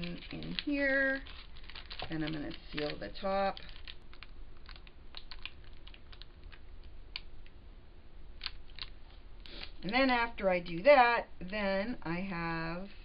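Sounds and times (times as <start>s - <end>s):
plastic bag crinkling: 0.0s - 7.3s, 8.4s - 10.3s.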